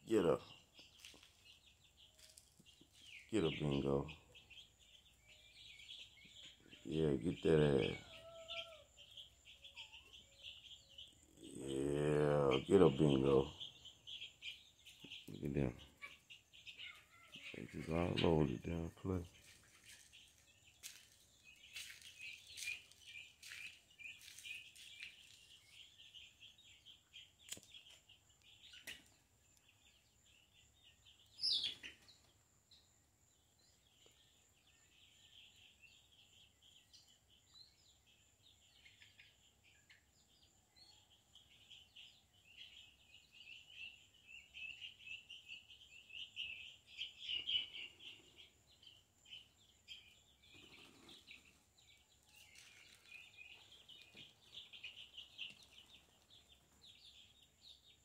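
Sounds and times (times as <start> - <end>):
birds chirping: 0.0 - 58.0.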